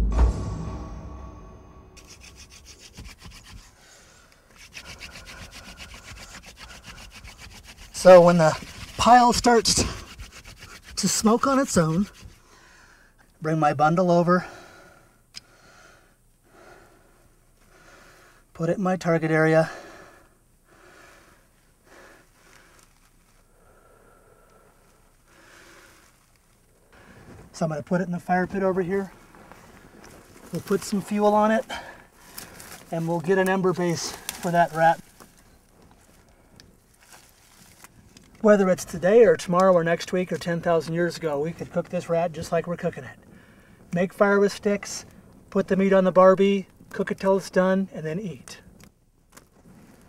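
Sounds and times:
wooden fire drill rubbing: 2.0 - 3.8, 4.5 - 12.4.

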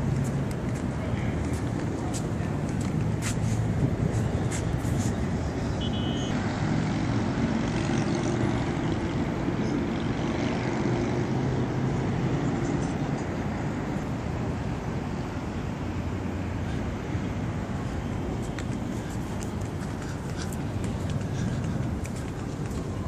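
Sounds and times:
road traffic rumble: 0.0 - 23.0
faint high beep: 5.8 - 6.4.

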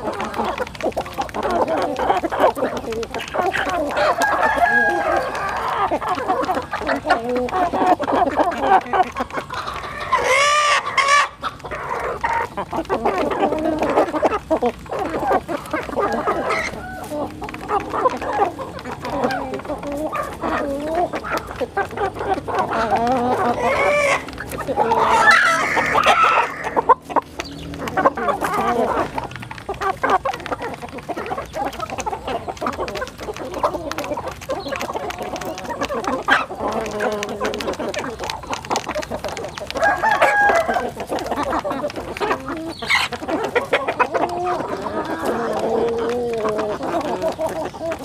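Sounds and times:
chickens clucking: 0.0 - 48.0
rooster crowing: 4.0 - 5.7, 39.8 - 41.0.

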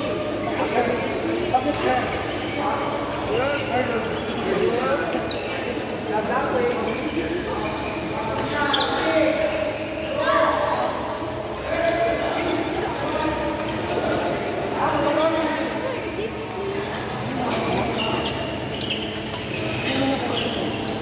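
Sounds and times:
voices: 0.0 - 21.0.

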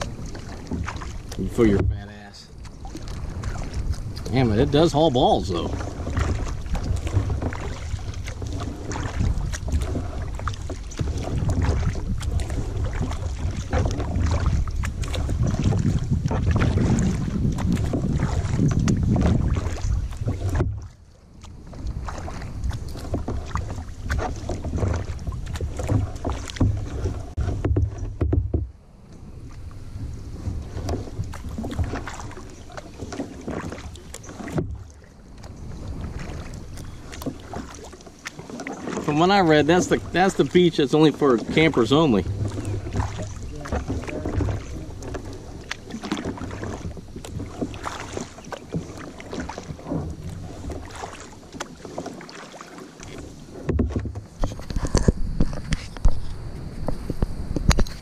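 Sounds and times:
wind buffeting microphone: 0.0 - 20.9, 21.5 - 37.6, 53.4 - 58.0
small splashes: 0.0 - 28.2, 29.4 - 56.3
paddle water sloshing and dripping: 0.0 - 58.0.

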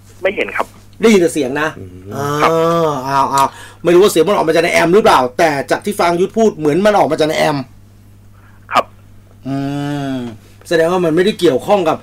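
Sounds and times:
faint electrical hum: 0.0 - 12.0
man speaking: 0.2 - 2.7
man humming mmm: 1.8 - 3.6, 9.4 - 10.4.

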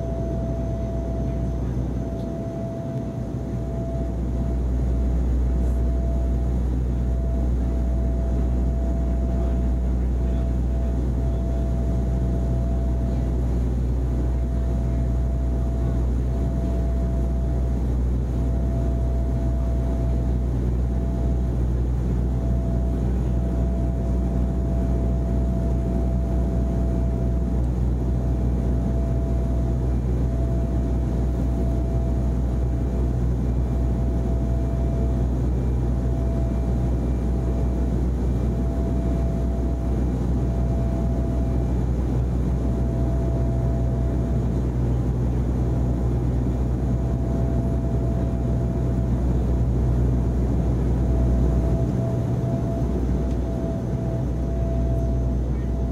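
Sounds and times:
helicopter engine and rotor drone: 0.0 - 55.9.

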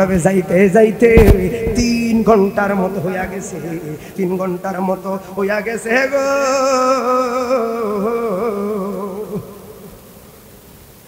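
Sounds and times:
man chanting a sung note: 0.0 - 9.9.

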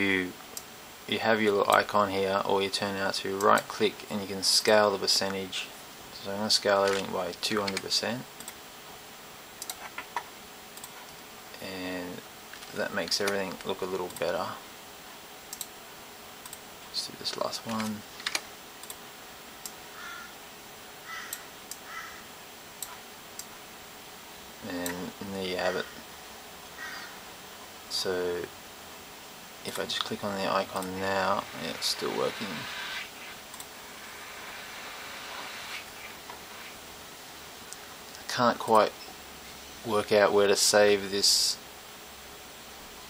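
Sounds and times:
faint room hiss: 0.0 - 43.0
harsh caw-like sounds: 19.9 - 20.4, 21.0 - 22.3, 26.8 - 27.3.

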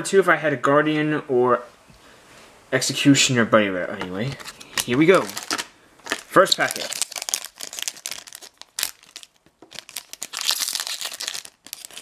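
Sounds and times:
foil pack crinkling and tearing: 4.2 - 12.0
sharp crack of foil: 4.8 - 12.0.

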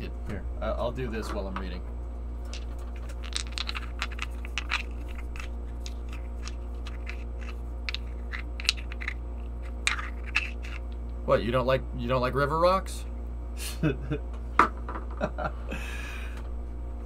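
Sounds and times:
steady low hum: 0.0 - 17.0
rocks knocking and scraping: 2.5 - 10.9.

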